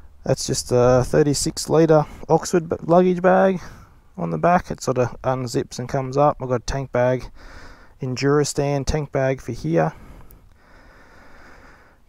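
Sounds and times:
low steady rumble: 0:00.0 - 0:12.0
person breathing out through nose: 0:07.4 - 0:08.0, 0:10.0 - 0:12.0.

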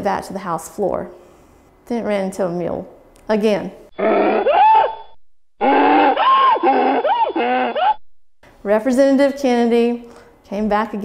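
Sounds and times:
mule braying: 0:03.9 - 0:08.0.

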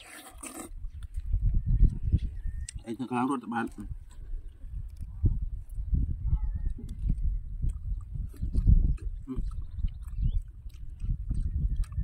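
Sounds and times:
wet slurp of fruit: 0:00.0 - 0:02.8, 0:06.6 - 0:12.0.

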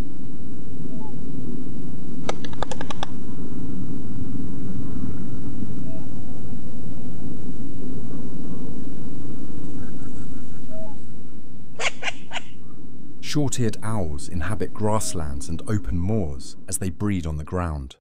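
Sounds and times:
low rumble of background noise: 0:00.0 - 0:18.0
sharp snaps: 0:02.2 - 0:03.1
faint short owl calls: 0:09.8 - 0:11.0.

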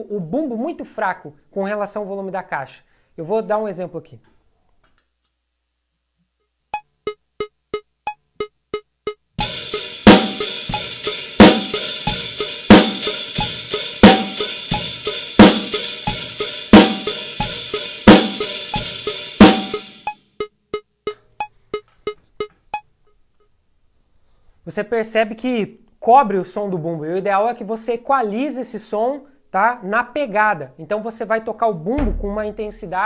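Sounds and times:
drum kit groove: 0:07.4 - 0:22.4, 0:32.0 - 0:33.0
metronome clicking: 0:20.0 - 0:22.9.

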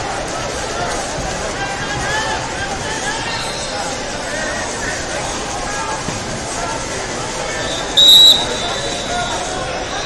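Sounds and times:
crowd chatter in hall: 0:00.0 - 0:10.0
referee's whistle blast: 0:07.7 - 0:09.5.

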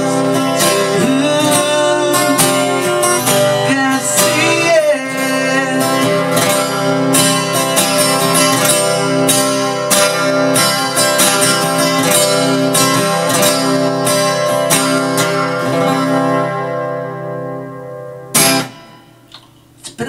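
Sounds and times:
acoustic guitar strumming: 0:00.0 - 0:19.8
damped guitar strum: 0:00.0 - 0:19.8.

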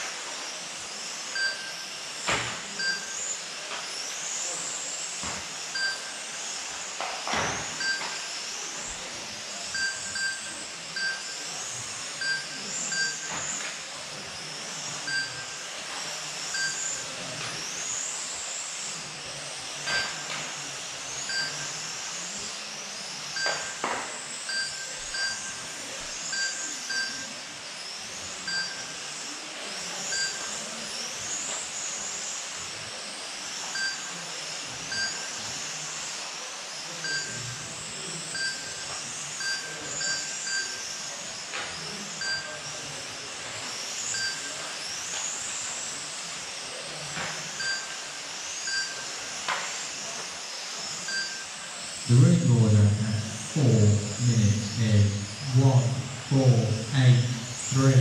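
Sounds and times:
electric toy car motors whining: 0:00.0 - 0:58.0
short electronic beeps: 0:12.2 - 0:13.3, 0:24.5 - 0:25.6, 0:51.1 - 0:51.4.

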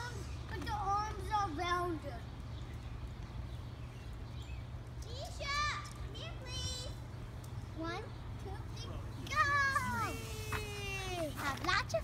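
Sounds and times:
children squealing and calling out: 0:09.2 - 0:12.0.

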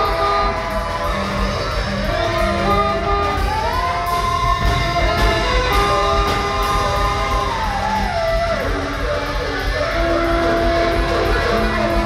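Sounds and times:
band improvising: 0:00.0 - 0:12.0
drums: 0:00.0 - 0:12.0.

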